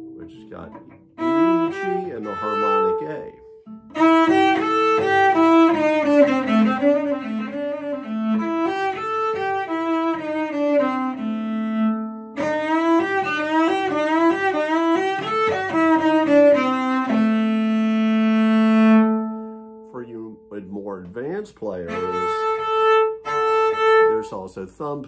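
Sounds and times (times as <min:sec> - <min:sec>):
bowed cello: 0:00.0 - 0:25.0.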